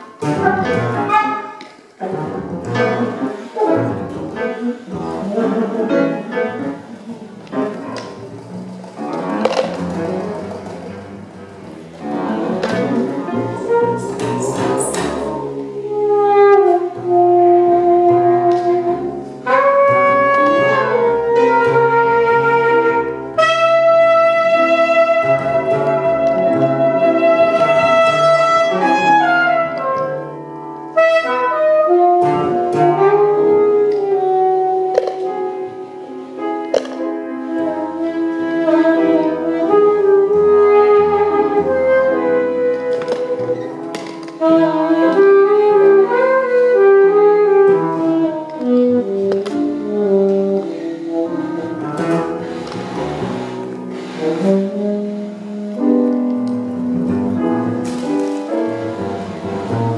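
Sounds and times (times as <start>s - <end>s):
double bass notes: 0.0s - 59.9s
piano attacks: 0.0s - 59.9s
saxophone: 0.0s - 59.9s.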